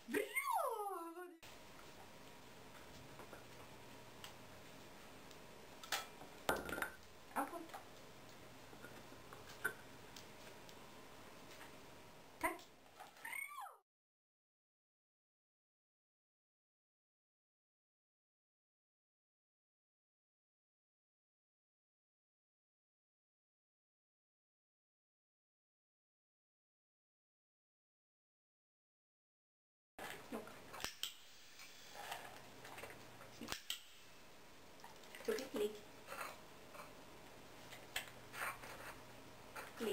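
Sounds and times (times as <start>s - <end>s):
dog whining: 13.2s - 13.8s.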